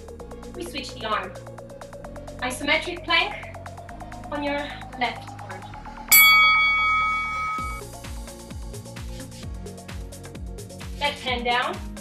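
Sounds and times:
electronic music with steady beat: 5.9 - 12.0
bell-like chime: 6.1 - 7.9.

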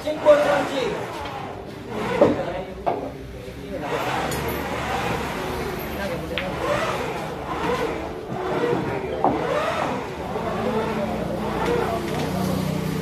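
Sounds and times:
men chatting: 0.0 - 13.0
pool balls clicking: 4.2 - 10.2.

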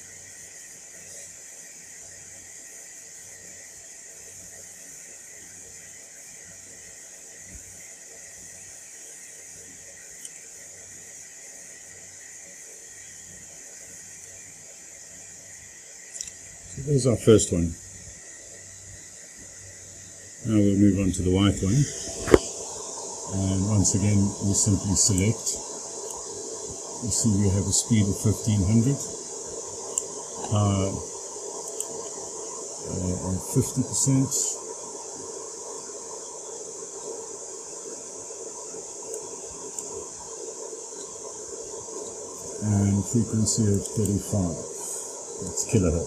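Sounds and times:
steady background hiss: 0.0 - 46.0
person speaking: 16.7 - 17.8, 20.4 - 22.4, 23.3 - 25.6, 27.0 - 29.2, 30.4 - 31.1, 32.8 - 34.6, 42.5 - 46.0.

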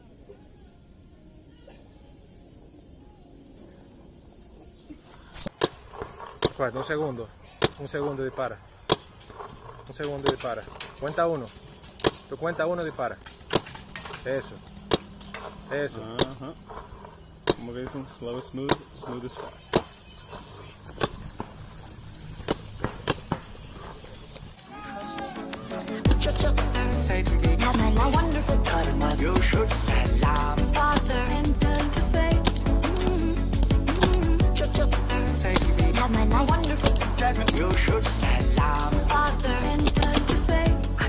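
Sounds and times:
paintball marker shots: 5.4 - 6.9, 8.8 - 10.9, 11.9 - 12.3, 13.2 - 16.8, 17.4 - 18.0, 18.6 - 21.6, 22.4 - 23.6, 27.6 - 41.0.

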